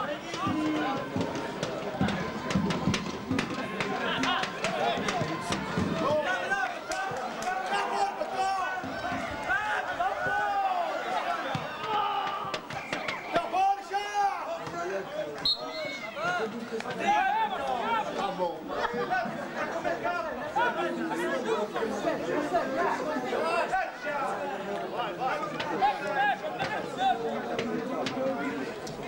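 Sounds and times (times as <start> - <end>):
crowd calls and chatter: 0.0 - 29.0.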